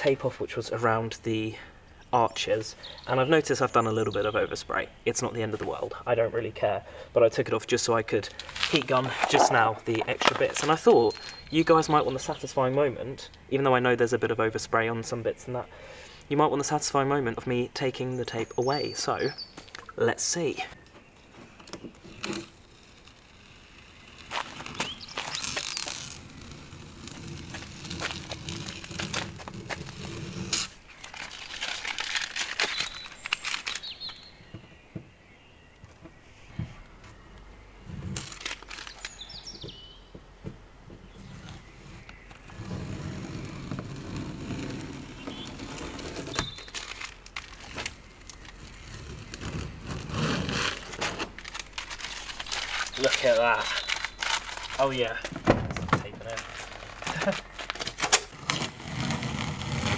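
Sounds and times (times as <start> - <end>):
tape being peeled off: 8.3 - 11.5, 20.8 - 34.3, 38.0 - 39.4, 41.2 - 55.3, 56.2 - 59.9.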